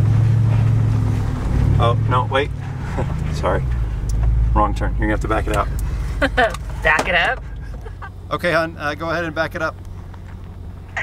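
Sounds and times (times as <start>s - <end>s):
engine and road noise drone: 0.0s - 11.0s.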